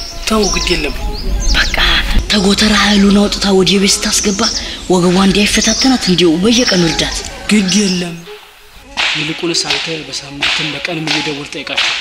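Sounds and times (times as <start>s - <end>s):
man speaking: 9.0s - 12.0s.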